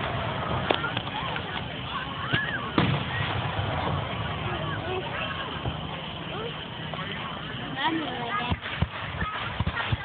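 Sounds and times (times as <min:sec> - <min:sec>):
low rumble: 0:00.0 - 0:07.8
fireworks bangs: 0:00.0 - 0:10.0.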